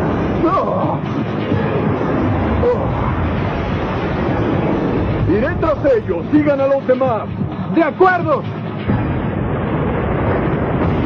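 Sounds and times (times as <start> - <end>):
rushing roar: 0.0 - 6.9.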